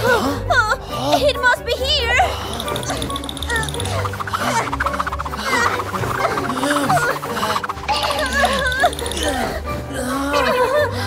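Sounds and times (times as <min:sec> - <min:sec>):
background music: 0:00.0 - 0:11.0
rapid scratching and rummaging: 0:02.6 - 0:09.2.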